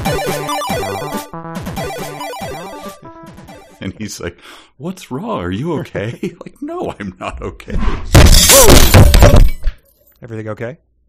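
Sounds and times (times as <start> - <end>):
glass jar shattering: 8.2 - 10.1.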